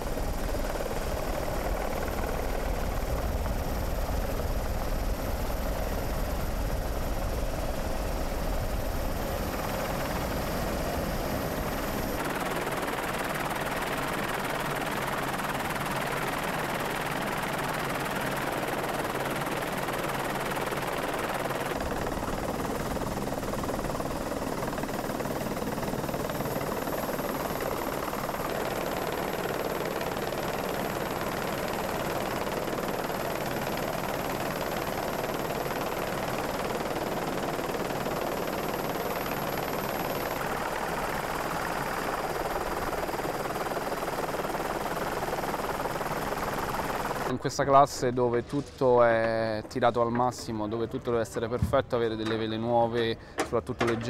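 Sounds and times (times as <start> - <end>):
helicopter rotor and engine: 0.0 - 54.0
wind: 0.0 - 54.0.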